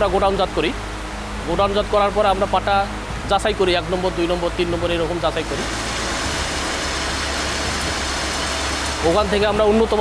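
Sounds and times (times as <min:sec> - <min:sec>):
low hum: 0:00.0 - 0:09.8
mill machinery running: 0:03.2 - 0:10.0.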